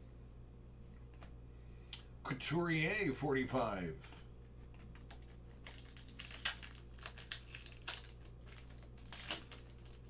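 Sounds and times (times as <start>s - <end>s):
foil wrapper crackling: 4.6s - 10.0s.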